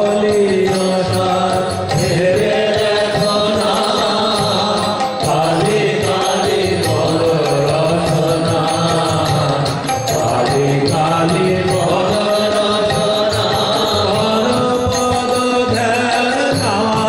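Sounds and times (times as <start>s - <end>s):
harmonium: 0.0s - 17.0s
men chanting a devotional song: 0.0s - 17.0s.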